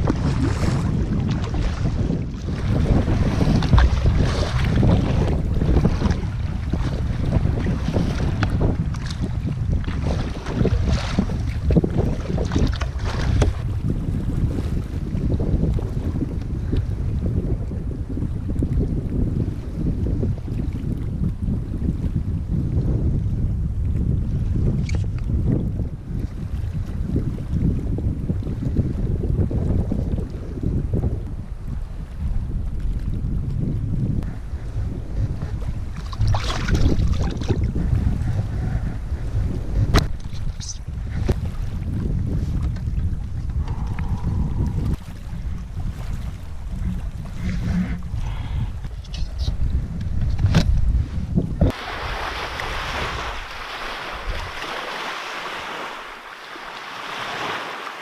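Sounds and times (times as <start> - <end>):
lake water splashing: 0.0 - 13.8, 34.4 - 49.7, 51.7 - 58.0
wind buffeting the microphone: 0.0 - 58.0.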